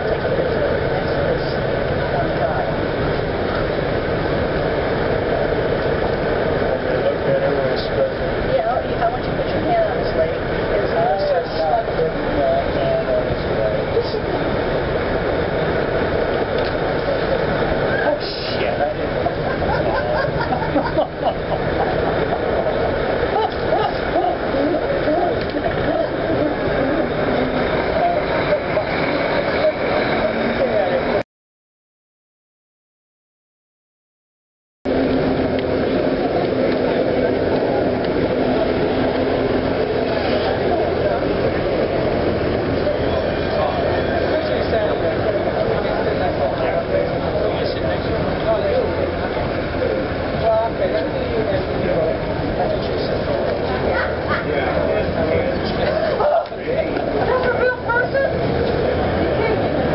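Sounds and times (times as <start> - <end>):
people talking indistinctly: 0.0 - 31.2, 35.3 - 59.9
street traffic noise: 0.0 - 31.2, 34.9 - 59.9.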